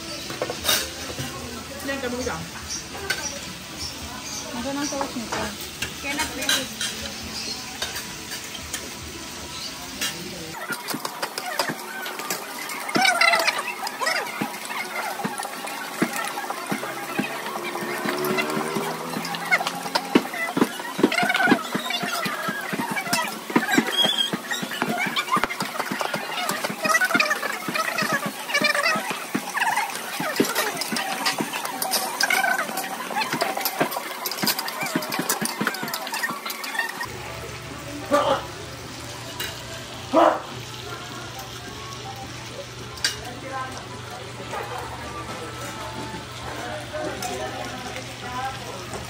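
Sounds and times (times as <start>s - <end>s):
diners chattering: 0.0s - 49.0s
dishes and cutlery clinking: 0.1s - 1.4s, 4.8s - 9.0s, 9.6s - 37.1s, 39.2s - 39.6s, 42.9s - 43.3s
clicks and clinks from tables: 27.7s - 37.1s.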